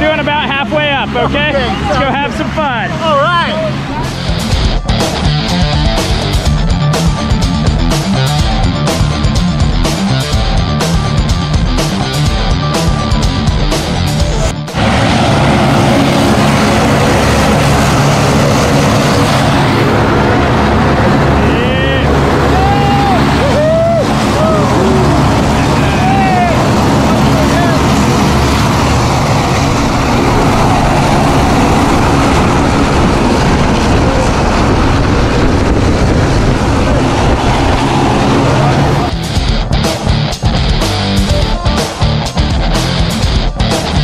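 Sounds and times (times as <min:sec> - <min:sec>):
propeller engine running: 0:00.0 - 0:44.0
raised voices: 0:20.7 - 0:28.6, 0:33.8 - 0:39.2, 0:41.1 - 0:44.0.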